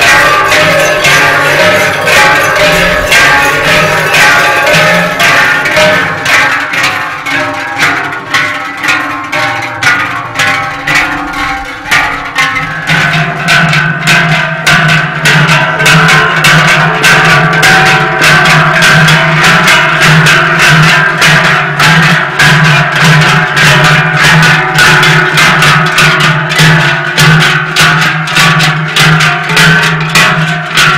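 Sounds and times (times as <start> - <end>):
large cowbells clanging: 0.0 - 30.9.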